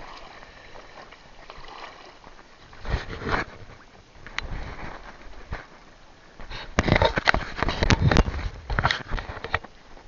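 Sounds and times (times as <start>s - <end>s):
water splashes and knocks: 0.0s - 5.8s.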